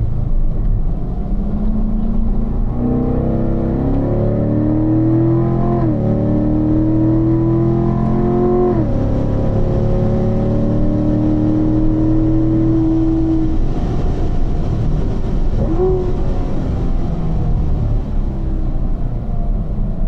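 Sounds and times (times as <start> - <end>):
car engine accelerating: 0.0 - 20.0.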